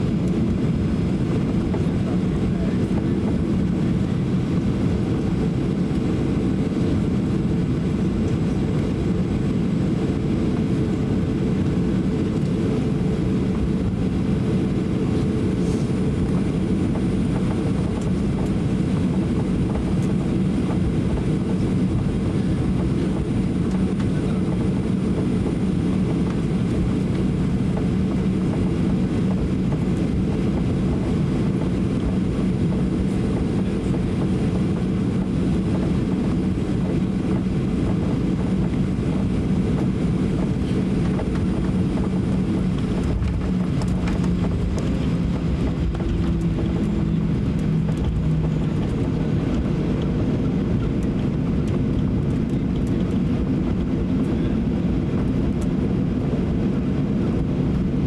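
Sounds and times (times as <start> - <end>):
jet engines idling: 0.0 - 58.0.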